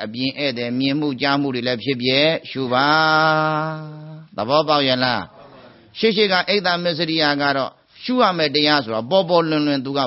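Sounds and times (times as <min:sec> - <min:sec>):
person chanting: 0:02.2 - 0:04.4.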